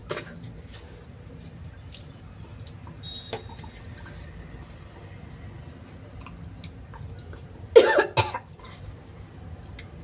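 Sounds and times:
woman coughing: 0:07.8 - 0:08.5.

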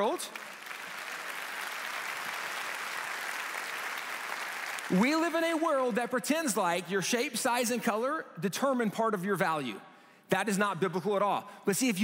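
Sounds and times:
large audience applauding: 0:00.0 - 0:05.7.

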